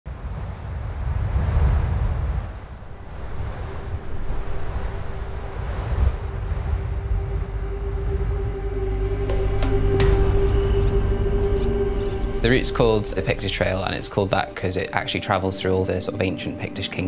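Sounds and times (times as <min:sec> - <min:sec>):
wind buffeting microphone: 0:00.1 - 0:10.8
steady low note: 0:02.8 - 0:16.9.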